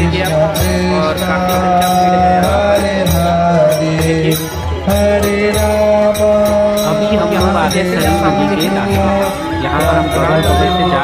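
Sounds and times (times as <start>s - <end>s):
percussion beat: 0.0s - 11.0s.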